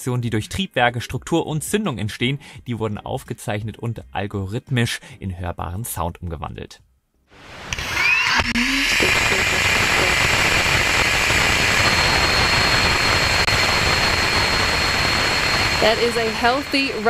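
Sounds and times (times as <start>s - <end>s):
loud rushing noise: 8.8s - 17.0s.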